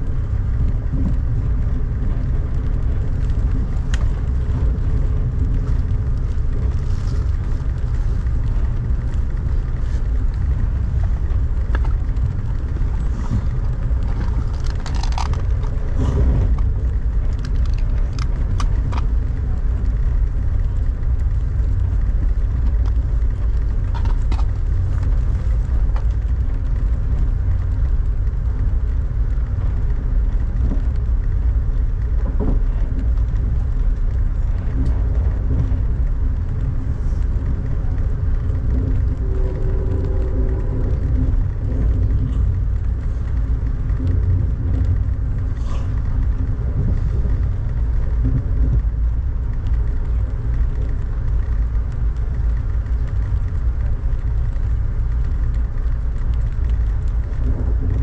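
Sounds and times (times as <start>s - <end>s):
train rumbling along track: 0.0s - 58.0s.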